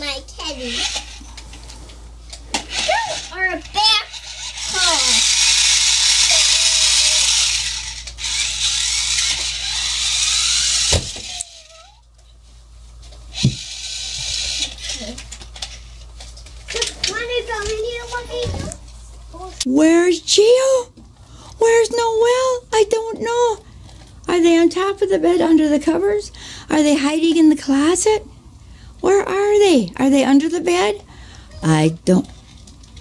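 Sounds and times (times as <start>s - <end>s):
child's voice: 0.0s - 1.1s, 2.8s - 5.3s, 14.8s - 15.2s, 16.7s - 19.7s.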